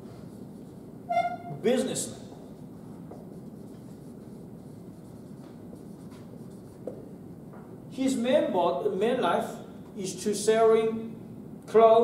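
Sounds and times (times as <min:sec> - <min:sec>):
room noise: 0:00.0 - 0:12.0
marker scratching on whiteboard: 0:02.4 - 0:07.1.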